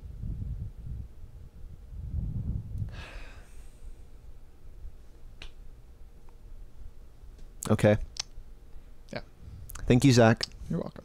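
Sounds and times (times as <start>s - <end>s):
short breathy rush: 2.8s - 4.2s
sharp click: 7.6s - 8.4s.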